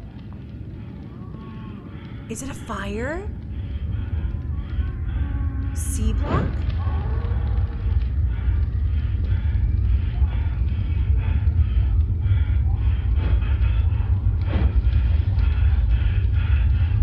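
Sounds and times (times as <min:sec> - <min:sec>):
indistinct voices: 0:00.0 - 0:17.0
muffled low rumble: 0:00.0 - 0:17.0.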